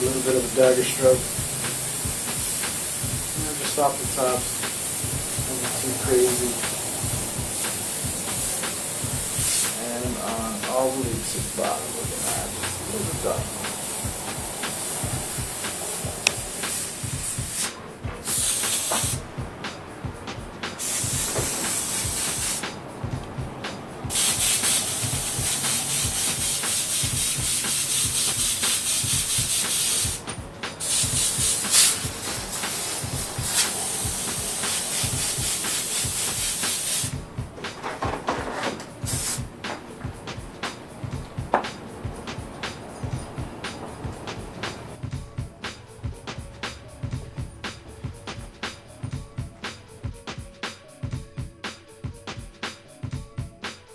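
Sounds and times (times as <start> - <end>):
airbrush spraying hiss: 0.0 - 37.4, 38.8 - 45.0
rapid low pulsing: 0.0 - 37.6, 39.0 - 51.6.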